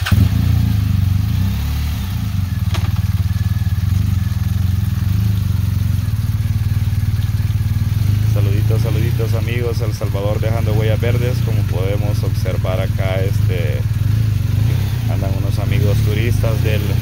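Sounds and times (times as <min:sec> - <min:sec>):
motorcycle engines idling: 0:00.0 - 0:17.0.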